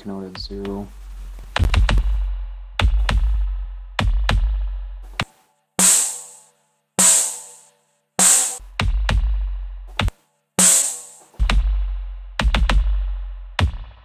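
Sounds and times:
electronic kick drum: 0.4 - 4.9, 5.8 - 6.4, 7.0 - 7.6, 8.2 - 14.0
deep sub-bass: 0.4 - 5.2, 8.6 - 10.1, 11.4 - 14.0
bright snare-like hits: 5.8 - 8.6, 10.0 - 11.5.

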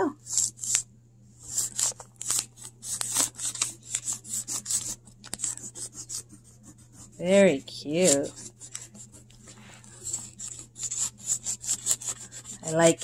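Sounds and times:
crayon rubbing on paper: 1.4 - 13.0.

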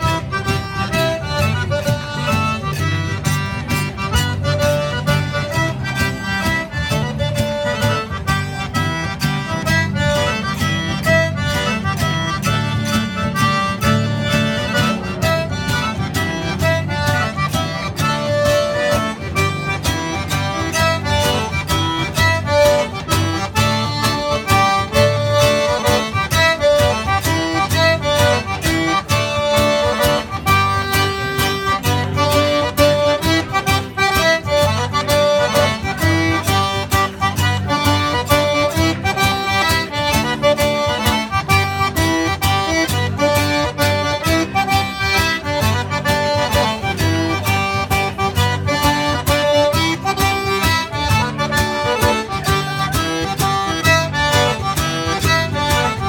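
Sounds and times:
accordion: 0.0 - 56.0
acoustic guitar: 0.0 - 56.0.

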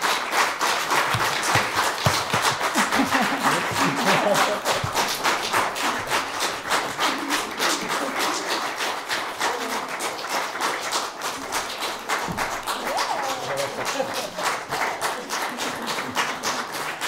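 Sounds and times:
audience applause: 0.0 - 17.0.

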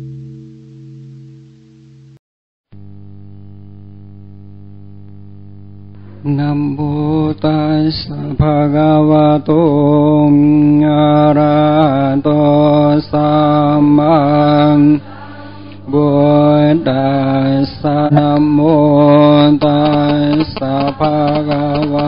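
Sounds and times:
person chanting long notes: 6.0 - 22.0.

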